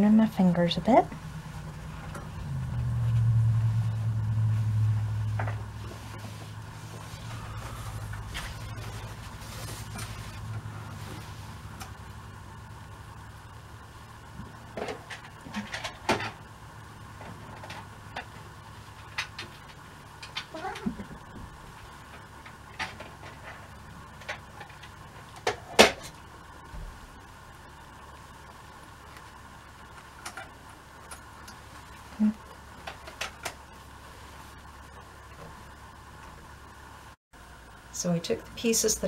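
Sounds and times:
low rumble: 0.0s - 14.7s
fabric rustling: 5.7s - 11.7s.

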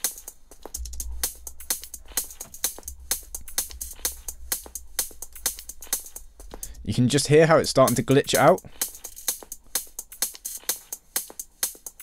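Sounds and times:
glitching electronic hi-hats: 0.0s - 12.0s
sub-bass: 0.6s - 9.4s.

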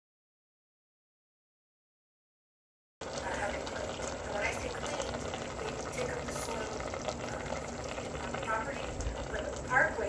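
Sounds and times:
meat sizzling in hot fat: 3.0s - 10.0s.

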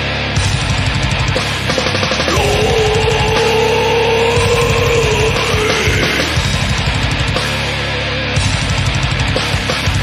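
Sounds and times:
heavy metal band: 0.0s - 10.0s.

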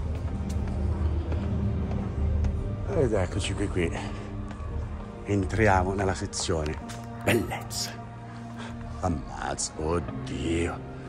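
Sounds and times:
footsteps going down stairs: 0.0s - 3.4s.

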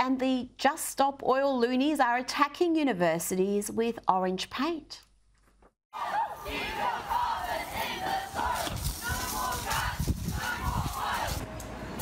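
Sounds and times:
people shouting: 6.0s - 11.4s.

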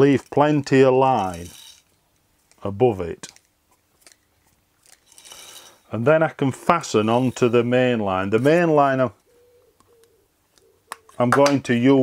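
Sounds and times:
fishing line rasping: 0.7s - 1.9s, 4.8s - 6.0s, 6.6s - 8.8s.

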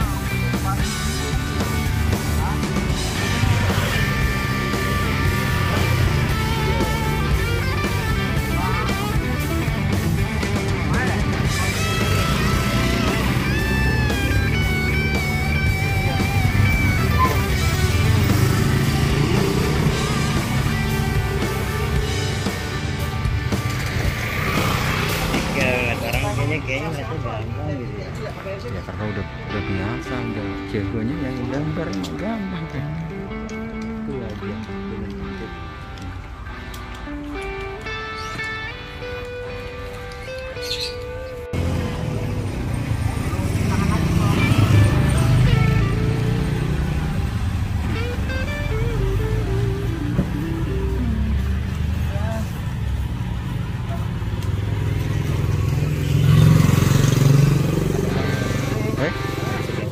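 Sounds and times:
background music: 0.0s - 59.9s
motor scooter passing by: 2.9s - 27.0s, 37.8s - 59.9s
motor scooter riding past: 23.2s - 26.1s, 40.6s - 59.9s.

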